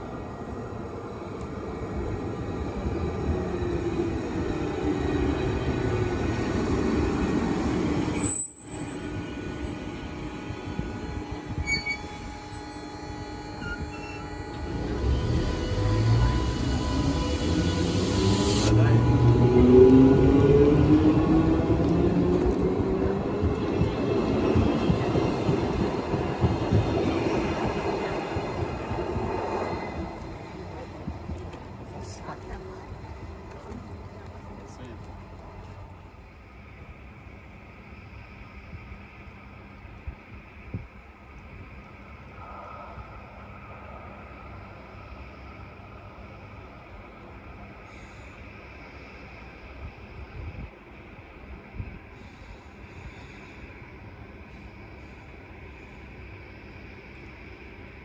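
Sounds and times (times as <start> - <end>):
electric train rumble: 0.0 - 58.0
traction motor whine: 8.1 - 23.0.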